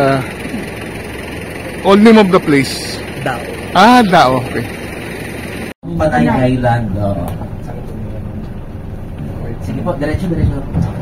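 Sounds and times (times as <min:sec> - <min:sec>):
car driving road noise: 0:00.0 - 0:11.0.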